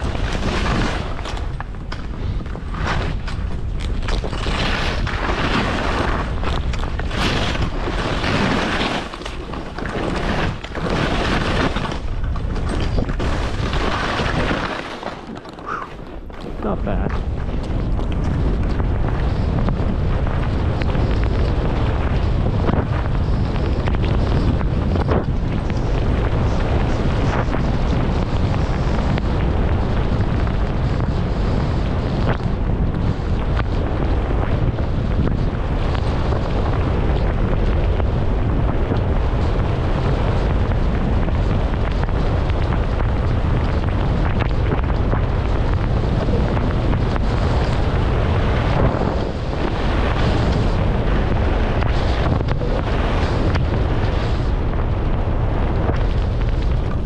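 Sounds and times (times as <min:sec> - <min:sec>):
skis running over packed snow: 0:00.0 - 0:57.0
wind buffeting microphone: 0:00.0 - 0:57.0.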